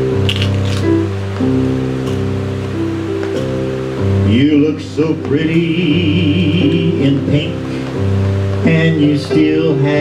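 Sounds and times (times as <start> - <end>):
electronic keyboard chords: 0.0 - 10.0.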